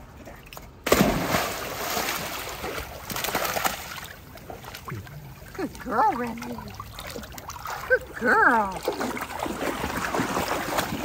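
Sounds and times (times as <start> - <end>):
water churning and slapping: 0.2 - 11.0
dog splashing into pool: 0.8 - 11.0.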